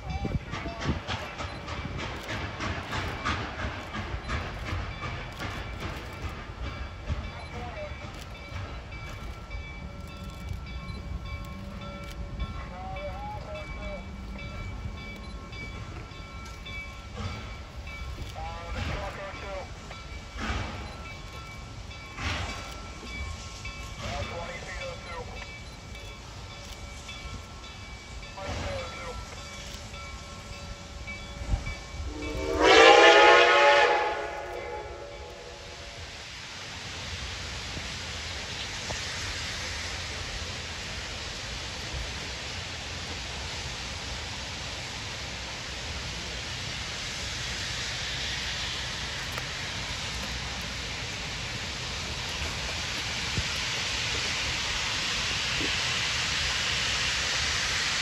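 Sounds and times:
steam locomotive rumbling: 0.0s - 58.0s
steam whistle blast: 32.1s - 36.1s.

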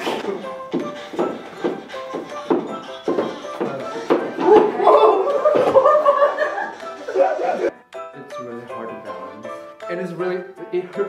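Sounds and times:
men laughing hard: 4.7s - 7.7s.

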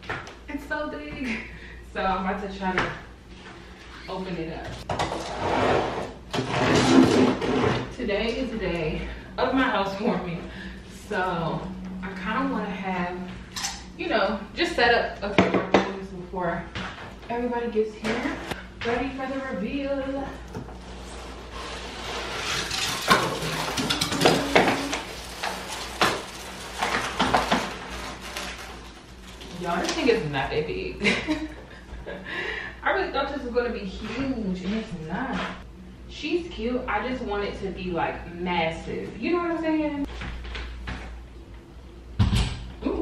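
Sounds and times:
cardboard scraping and rustling: 20.7s - 29.8s.

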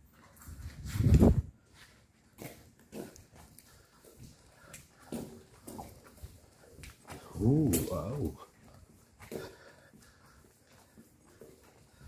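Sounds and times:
short grunts and breaths: 6.6s - 11.0s.

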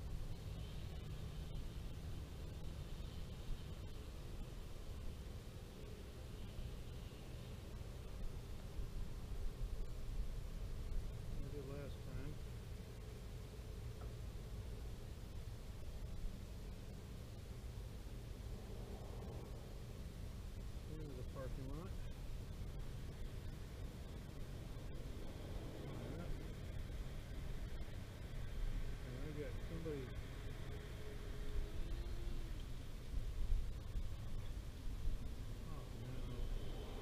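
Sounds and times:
low background noise: 0.0s - 37.0s
steady hiss: 0.0s - 37.0s
wind rumbling on microphone: 0.0s - 37.0s.

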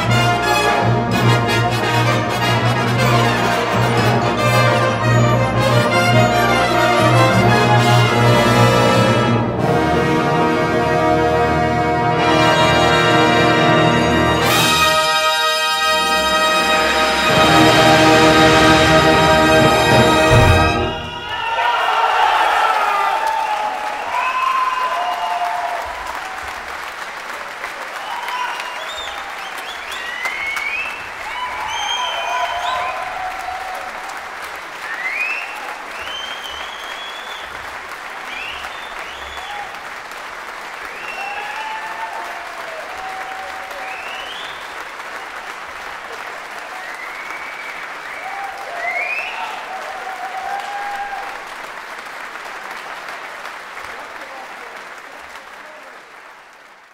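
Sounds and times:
audience applauding: 0.0s - 11.2s, 12.2s - 56.9s.

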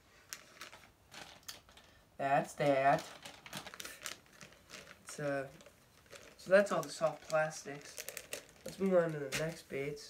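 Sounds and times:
plastic packaging rustling: 0.0s - 10.0s.

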